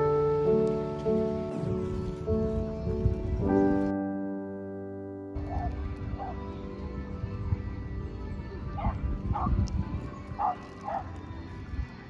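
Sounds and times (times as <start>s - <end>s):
background music: 0.0s - 12.0s
small dog barking: 10.4s - 11.1s.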